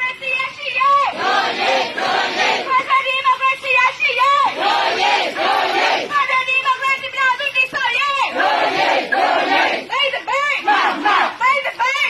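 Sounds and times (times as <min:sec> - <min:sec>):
crowd shouting in unison: 0:01.0 - 0:02.8, 0:04.2 - 0:06.1, 0:08.2 - 0:11.4.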